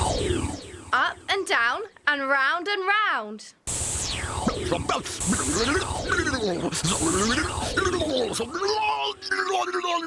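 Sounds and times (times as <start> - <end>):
electronic zapping falling sweeps: 0.0 - 1.8, 3.7 - 9.5
low electric buzz: 0.0 - 1.9, 3.7 - 9.3.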